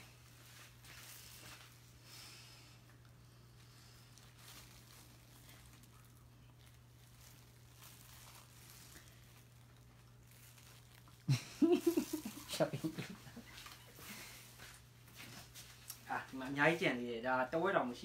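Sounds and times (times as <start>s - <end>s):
faint rustles: 0.0s - 16.1s
steady low hum: 0.0s - 18.0s.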